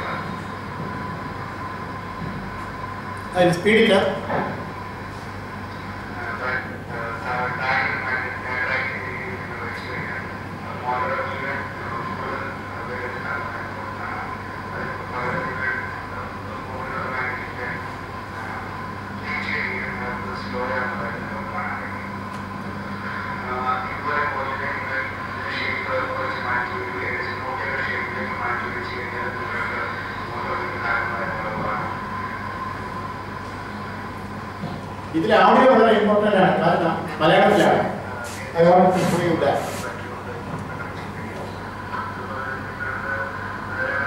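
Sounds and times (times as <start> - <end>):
steady low hum: 0.0 - 44.0
indistinct voices talking: 22.8 - 44.0.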